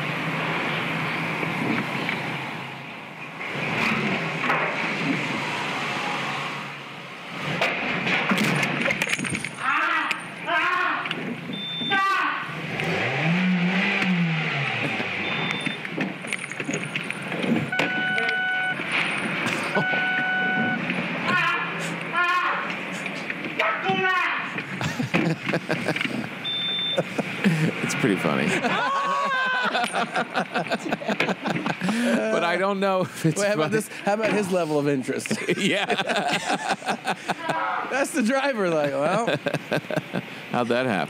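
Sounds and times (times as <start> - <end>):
car: 0.0 - 35.4
short electronic beeps: 11.5 - 12.0, 15.2 - 15.8, 17.7 - 18.8, 19.7 - 20.9, 26.4 - 27.1
people's voices: 21.2 - 41.0
cry rising and falling in pitch: 28.6 - 30.0.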